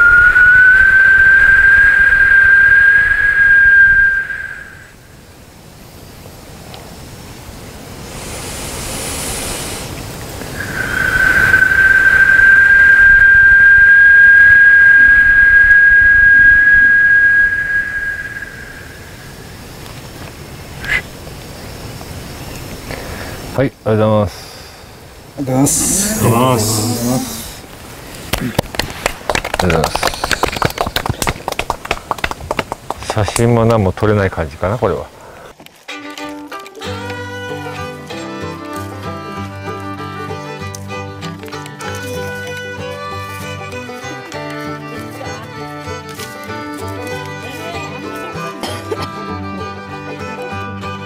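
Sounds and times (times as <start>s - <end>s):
high whistle note: 0.0s - 5.2s, 10.5s - 19.6s
breathy hiss: 7.8s - 13.6s, 22.8s - 29.0s, 35.0s - 35.7s
voices: 25.3s - 27.8s, 29.5s - 31.5s
people clapping: 28.3s - 33.5s.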